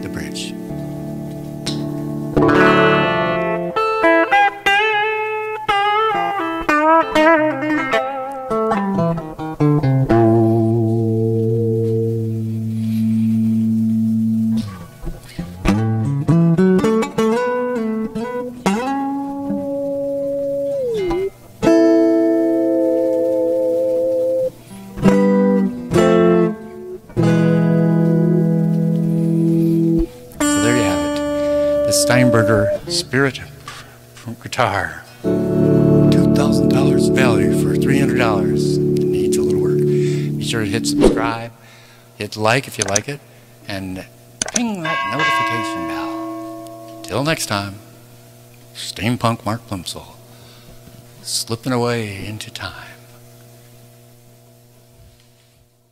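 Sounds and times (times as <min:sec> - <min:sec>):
electric guitar playing: 0:00.0 - 0:33.9, 0:35.2 - 0:41.7, 0:44.4 - 0:48.4.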